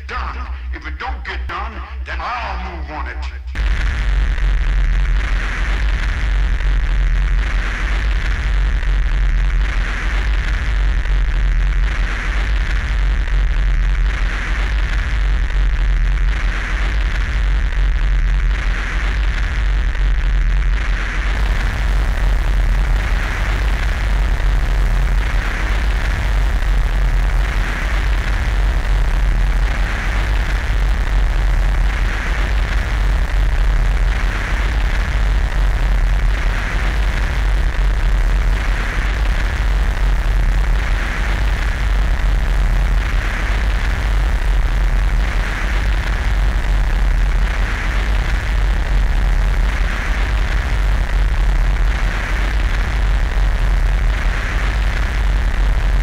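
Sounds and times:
pulsing hiss: 21.2 - 44.0
heavy low drone: 21.2 - 48.4.

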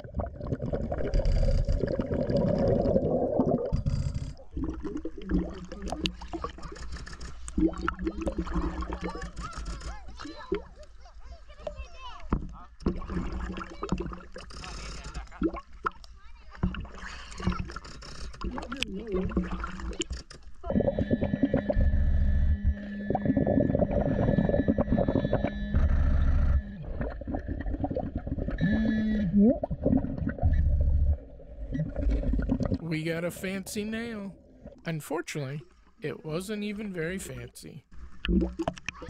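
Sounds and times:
diver's exhaled bubbles rumbling: 0.0 - 6.7, 7.5 - 9.4, 12.8 - 14.6, 18.4 - 32.8
water lapping at surface: 0.0 - 21.9
muffled underwater noise: 5.3 - 27.2, 32.7 - 37.8.

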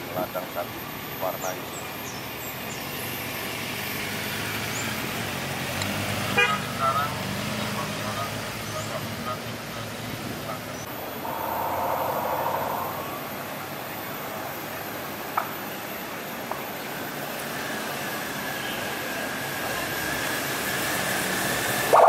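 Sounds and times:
cars and motorcycles driving past: 2.9 - 14.8
car horn toot: 6.4 - 6.9.

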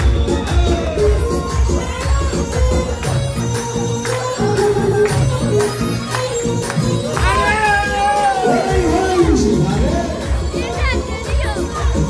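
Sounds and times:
guests and children calling: 0.0 - 12.0
loud dance music with heavy beat: 0.0 - 12.0.

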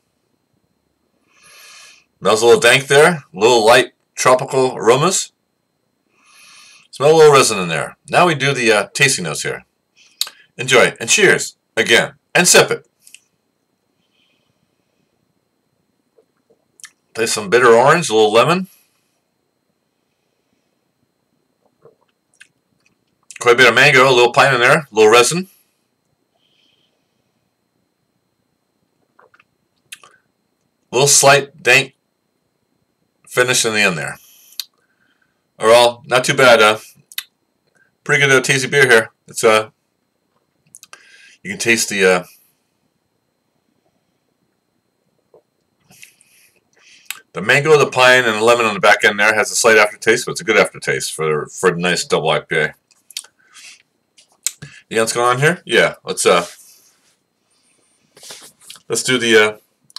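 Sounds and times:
man sniffing: 53.4 - 53.8, 56.5 - 58.7.

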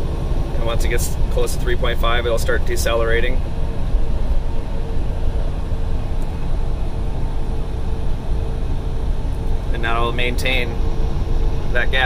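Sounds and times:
faint steady hum: 0.0 - 12.0
truck engine and road rumble: 0.0 - 12.0.

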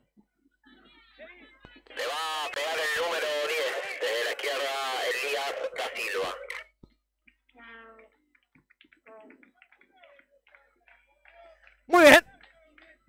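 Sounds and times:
raised high-pitched voice: 11.9 - 12.2.

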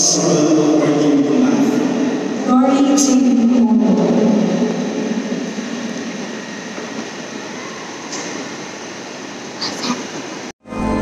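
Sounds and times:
congregation murmur: 0.0 - 10.5
reverberant room noise: 0.0 - 11.0
held low note from sound system: 10.6 - 11.0.

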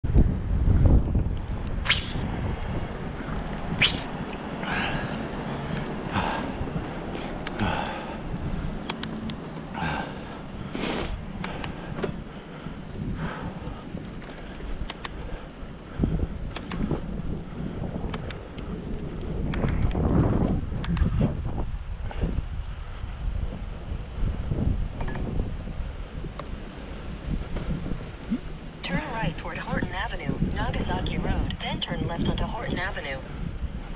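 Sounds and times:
wind rumbling on microphone: 0.0 - 33.9
bicycle clicks and rattles: 6.8 - 10.7, 11.3 - 21.2.

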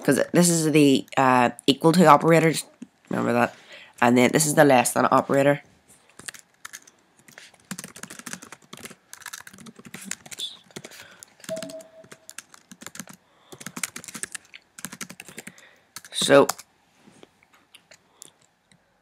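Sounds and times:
typing on computer keyboard: 6.2 - 16.7.

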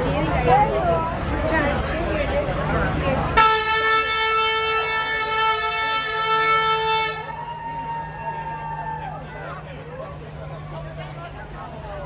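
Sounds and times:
crowd chatter: 0.0 - 12.0
truck air horn blast: 3.4 - 7.4.

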